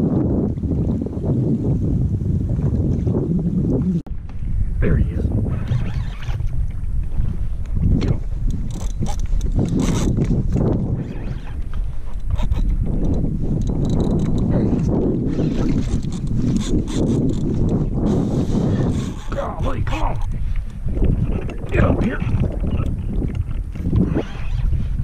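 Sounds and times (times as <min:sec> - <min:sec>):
water lapping against kayak hull: 0:00.0 - 0:25.0
wind buffeting microphone: 0:00.0 - 0:25.0.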